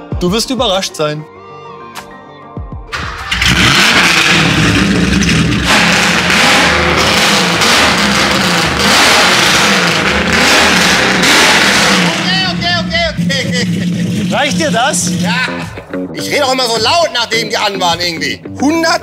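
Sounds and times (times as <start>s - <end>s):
man's voice: 0.0s - 1.3s, 12.1s - 19.0s
race car engine revving: 3.0s - 15.8s.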